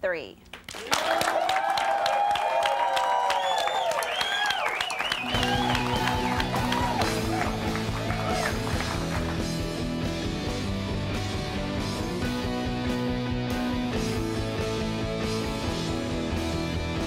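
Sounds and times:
audience applause: 0.7s - 9.8s
rock band playing: 5.2s - 17.0s.

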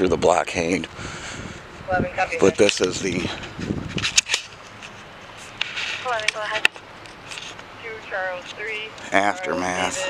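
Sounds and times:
indistinct voice sounds: 9.0s - 10.0s.

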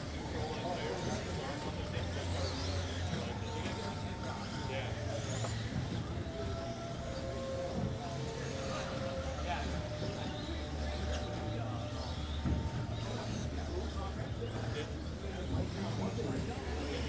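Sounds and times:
electric motors whining: 0.0s - 17.0s
low hum of hall: 0.0s - 17.0s.

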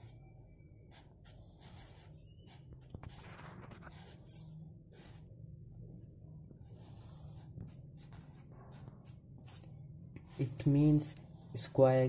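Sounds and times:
pen writing on paper: 0.9s - 5.3s, 6.6s - 10.6s.

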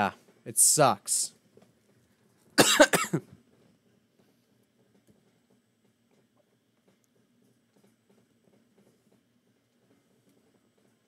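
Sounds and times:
person coughing: 2.6s - 3.3s.

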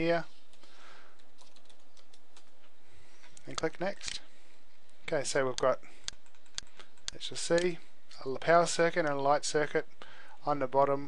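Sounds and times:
computer keyboard typing: 0.5s - 2.6s, 6.0s - 7.2s.

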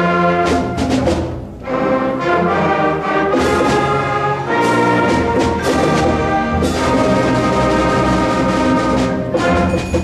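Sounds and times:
concert band chords: 0.0s - 10.0s
percussion hits: 3.3s - 10.0s.

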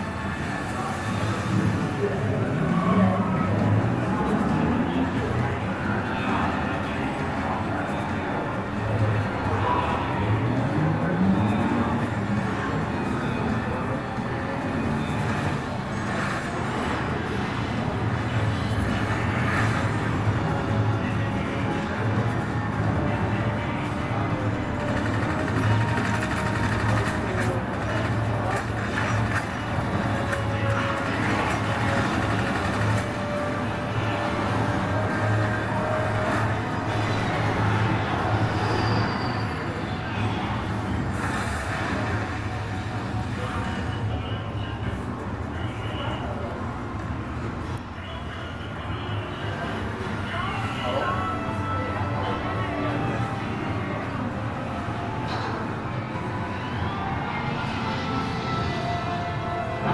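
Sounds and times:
film music over speakers: 0.0s - 59.9s
voices: 0.0s - 59.9s
speedboat engines and spray: 37.0s - 44.7s.

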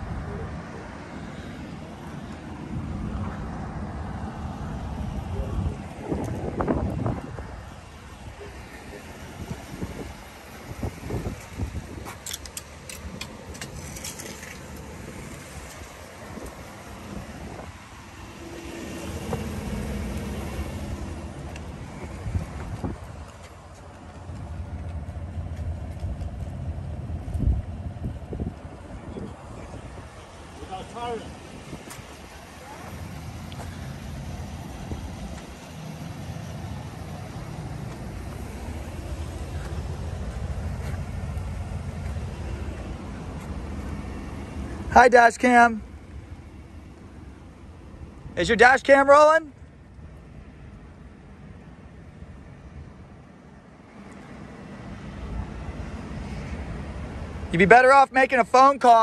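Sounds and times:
motor vehicle rumble: 0.0s - 57.8s.

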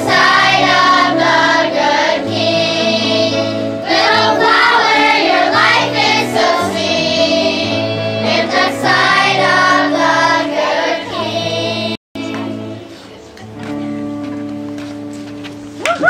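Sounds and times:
children's choir singing: 0.0s - 12.8s
instrumental accompaniment: 0.0s - 16.0s.

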